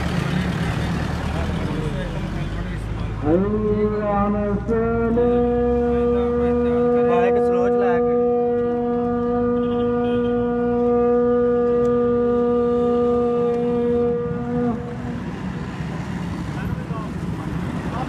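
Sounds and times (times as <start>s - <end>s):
horn held note: 6.2s - 15.1s
voices: 12.8s - 18.0s.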